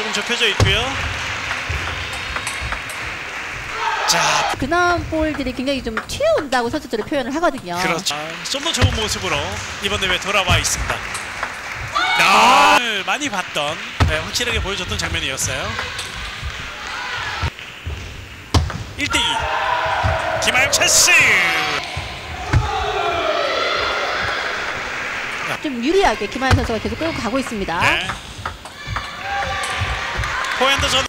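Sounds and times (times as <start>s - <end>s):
murmur of sports hall: 0.0s - 31.0s
ball clicking off bats: 0.2s - 12.4s, 13.3s - 31.0s
soft thumps: 0.6s - 3.9s, 4.5s - 7.8s, 14.0s - 31.0s
ball bouncing on table: 17.2s - 20.5s, 26.5s - 31.0s.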